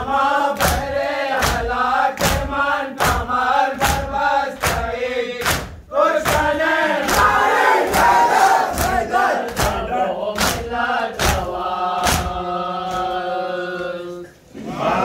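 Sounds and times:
crowd of men chanting: 0.0 - 15.0.

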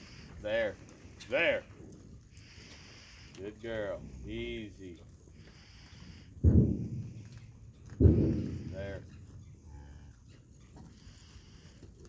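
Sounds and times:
low steady rumble: 3.9 - 11.3
cow lowing: 5.4 - 12.0.

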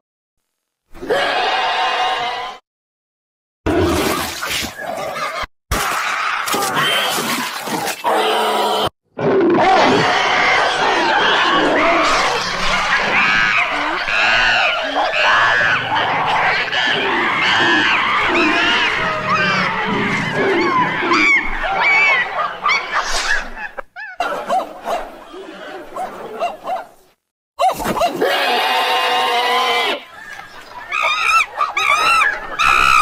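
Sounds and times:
apes screaming hooting and grunting: 1.0 - 2.6, 3.7 - 26.4, 27.6 - 30.1, 30.9 - 33.0.

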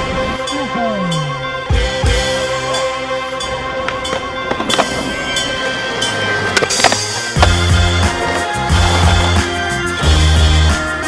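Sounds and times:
background music with bass beat: 0.0 - 11.0
skateboard clacks: 3.8 - 10.8.

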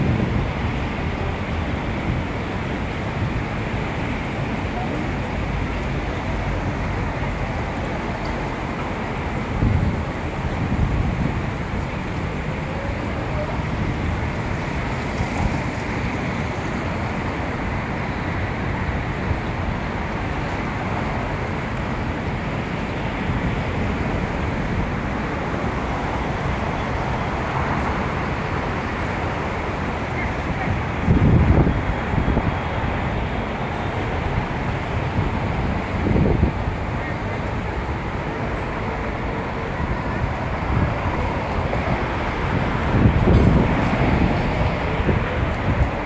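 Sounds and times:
traffic running by: 0.0 - 46.0
wind rumbling on microphone: 0.0 - 46.0.

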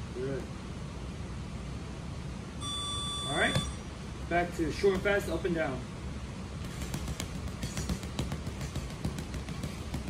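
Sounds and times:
gloved punches on heavy bag: 6.6 - 10.0.

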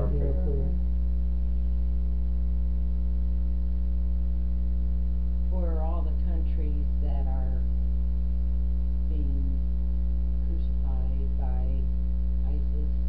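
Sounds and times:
faint voices speaking: 0.0 - 0.8
loud electrical mains hum: 0.0 - 13.0.

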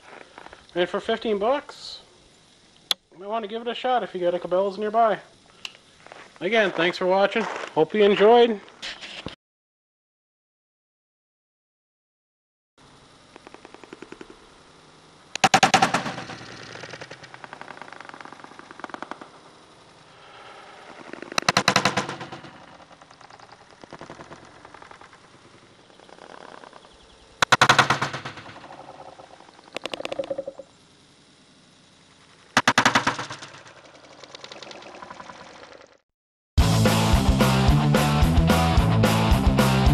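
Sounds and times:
fast rattling texture: 15.4 - 30.7, 32.6 - 36.0
loud rock music: 36.6 - 39.9.

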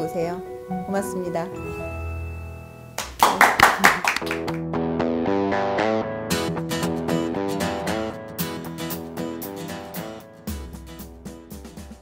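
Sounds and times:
background music chord: 0.0 - 3.3
hand claps: 3.0 - 4.8.

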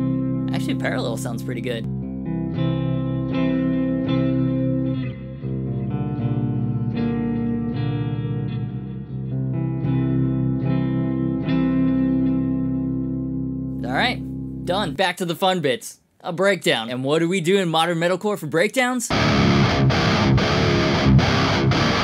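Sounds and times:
clean electric guitar chords: 0.0 - 14.7, 19.1 - 22.0.

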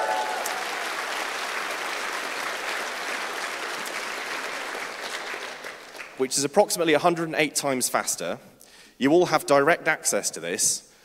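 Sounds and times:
whoops: 0.0 - 1.0
audience applauding and cheering: 0.0 - 6.2.

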